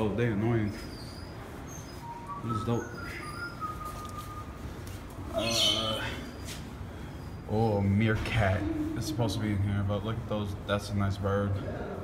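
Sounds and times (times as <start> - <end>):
birds whistling: 0.0 - 7.9
low room hum: 0.0 - 12.0
high bird chirps: 5.3 - 6.4.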